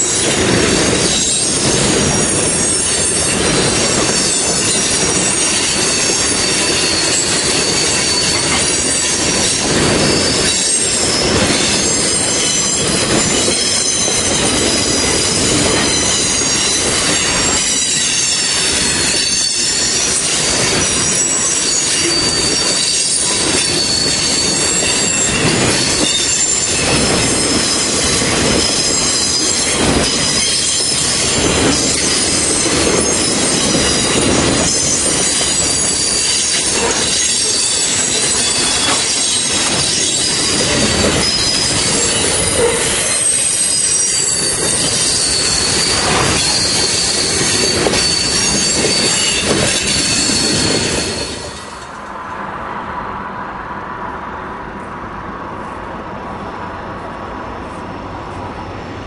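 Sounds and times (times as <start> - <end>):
high-pitched wheel squeal: 0.0 - 51.9
train wheels rumbling on rail: 0.0 - 59.0.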